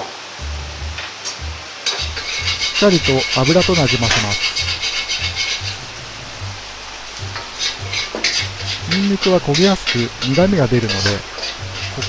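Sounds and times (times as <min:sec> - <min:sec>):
background music with low beat: 0:00.4 - 0:12.0
garlic sizzling in oil: 0:01.8 - 0:12.0
metal ladle scraping pan: 0:01.9 - 0:06.4, 0:07.3 - 0:12.0.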